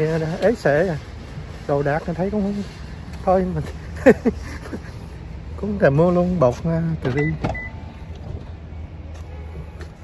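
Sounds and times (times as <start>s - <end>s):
vehicles rumbling: 0.0s - 10.0s.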